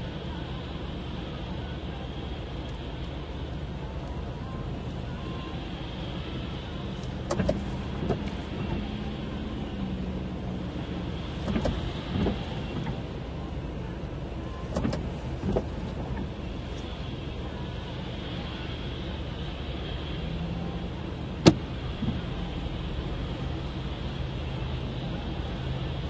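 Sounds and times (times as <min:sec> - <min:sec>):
car engine idling: 0:00.0 - 0:26.0.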